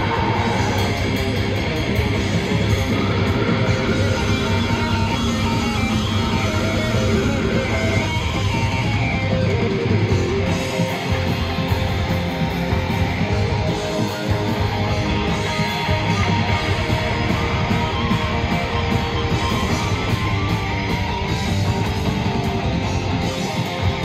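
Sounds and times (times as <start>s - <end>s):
bass guitar: 0.0s - 24.0s
drums: 0.0s - 24.0s
electric guitars: 0.0s - 24.0s.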